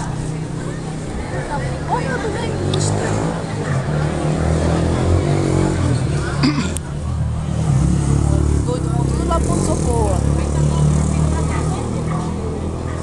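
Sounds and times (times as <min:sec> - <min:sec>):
crowd voices in the street: 0:00.0 - 0:13.0.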